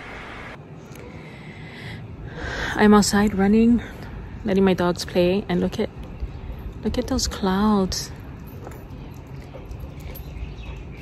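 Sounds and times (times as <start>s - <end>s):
dog claws clicking on concrete: 8.2s - 11.0s.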